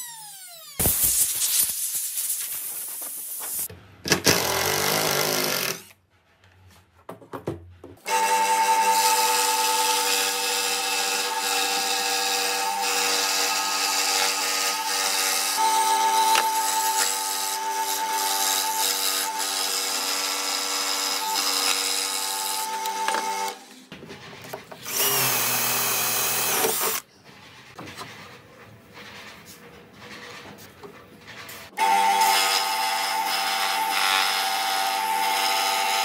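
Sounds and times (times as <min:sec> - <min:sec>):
scroll saw cutting wood: 0:00.0 - 0:01.0, 0:08.1 - 0:23.8, 0:24.8 - 0:27.0.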